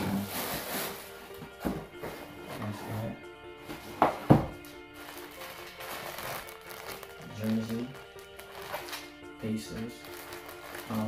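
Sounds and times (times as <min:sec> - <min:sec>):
background music with held tones: 0:00.0 - 0:11.0
plastic bag crinkling: 0:04.9 - 0:09.1, 0:09.9 - 0:11.0.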